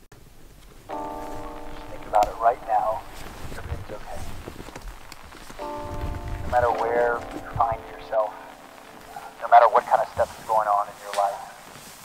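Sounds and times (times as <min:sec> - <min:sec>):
held music chord: 0:00.9 - 0:11.7.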